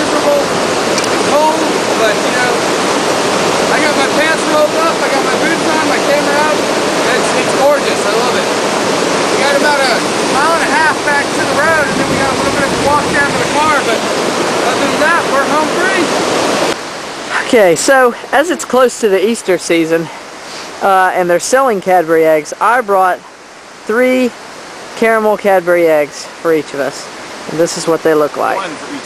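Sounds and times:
man talking: 0:00.0 - 0:00.6, 0:01.2 - 0:02.7, 0:03.6 - 0:08.6, 0:09.3 - 0:16.2, 0:17.3 - 0:19.8, 0:28.4 - 0:29.0
mountain stream rushing over boulders: 0:00.0 - 0:29.0.

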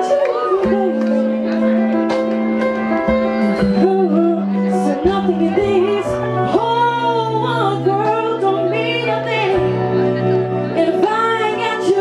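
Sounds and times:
woman singing into microphone: 0:00.0 - 0:01.8, 0:03.1 - 0:12.0
backing music: 0:00.0 - 0:12.0.

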